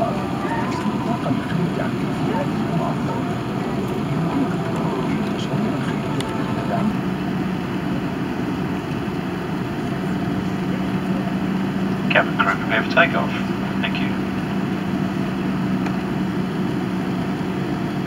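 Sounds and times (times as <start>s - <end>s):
low steady hum: 0.0s - 16.0s
air conditioning: 0.0s - 18.0s
aircraft engine rumble: 0.0s - 18.0s.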